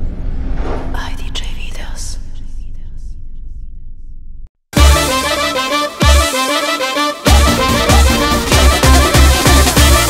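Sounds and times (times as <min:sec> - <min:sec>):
deep low rumble: 0:00.0 - 0:04.5
whispered voice: 0:00.9 - 0:03.2.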